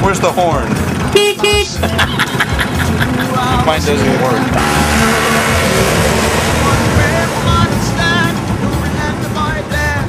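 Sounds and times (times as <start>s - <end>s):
scooter horn beeping: 1.1s - 1.8s, 4.6s - 8.3s.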